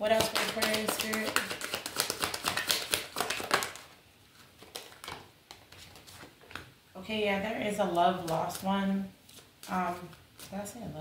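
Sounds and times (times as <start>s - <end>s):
cards being shuffled: 0.1s - 6.7s, 8.2s - 10.7s.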